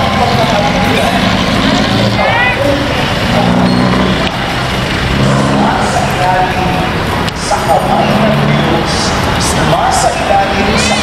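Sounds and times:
crowd voices: 0:00.0 - 0:11.0
road traffic: 0:00.0 - 0:11.0.

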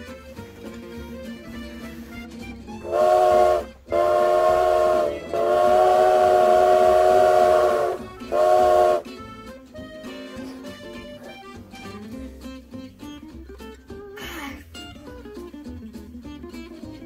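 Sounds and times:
faint music: 0:00.0 - 0:17.0.

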